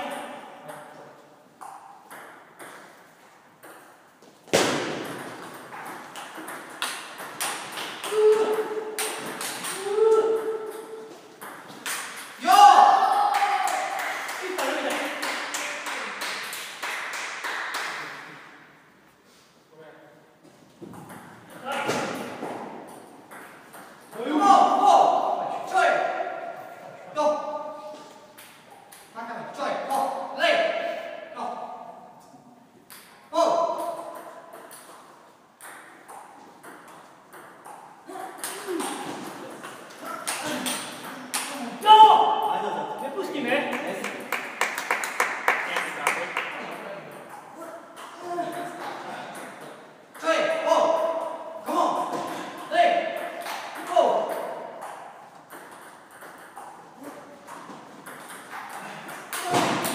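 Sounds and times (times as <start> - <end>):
table tennis balls clicking: 5.0 - 12.4, 33.8 - 41.5, 53.1 - 59.9
loud shout: 8.0 - 8.8, 9.8 - 10.6, 12.4 - 14.8, 41.6 - 42.4.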